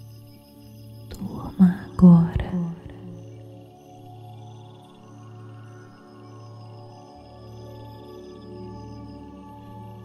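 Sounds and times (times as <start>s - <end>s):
person whispering: 1.1s - 3.2s.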